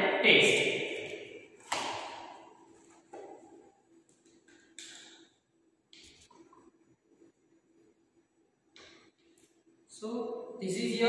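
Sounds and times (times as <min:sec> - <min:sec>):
plastic bottle handling: 0:01.6 - 0:05.1.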